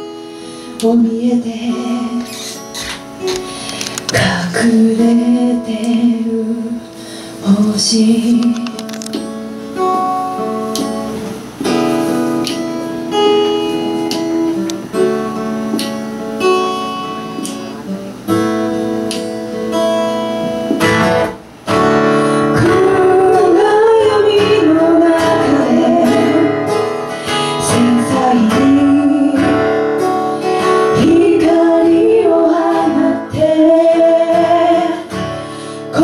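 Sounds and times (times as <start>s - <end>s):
acoustic guitar: 0.0s - 36.0s
woman singing: 0.7s - 2.7s, 4.0s - 8.9s, 22.4s - 36.0s.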